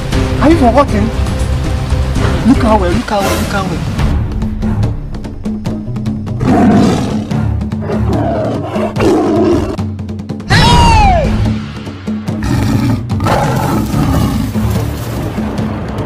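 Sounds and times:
dramatic background music: 0.0 - 16.0
tiger roaring: 6.4 - 9.8, 12.4 - 14.8.

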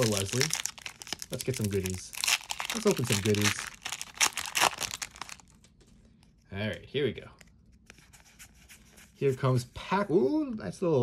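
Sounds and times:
foil wrapper crinkling: 0.0 - 5.7.

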